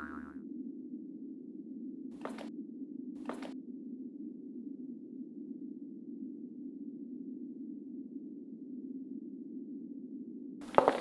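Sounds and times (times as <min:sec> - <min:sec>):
wobbling boing sound effect: 0:00.0 - 0:00.3
steady low hum: 0:00.0 - 0:11.0.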